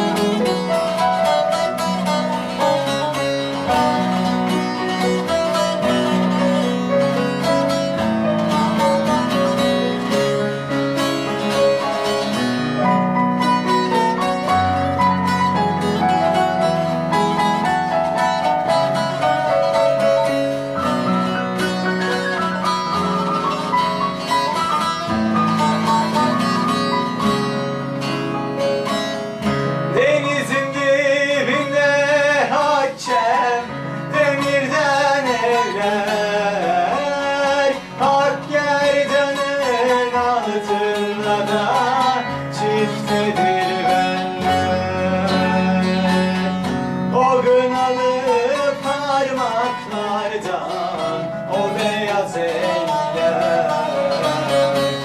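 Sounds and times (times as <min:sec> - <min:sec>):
grand piano playing: 0:00.0 - 0:55.0
long-necked lute playing: 0:00.0 - 0:55.0.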